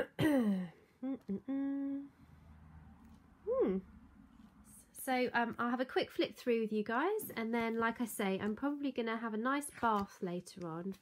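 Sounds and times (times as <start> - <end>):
woman humming: 0.5 - 2.2, 3.5 - 3.9.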